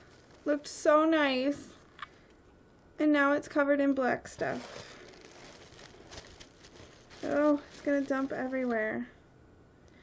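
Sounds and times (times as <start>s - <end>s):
tissue paper rustling: 0.0s - 1.4s, 4.3s - 9.0s.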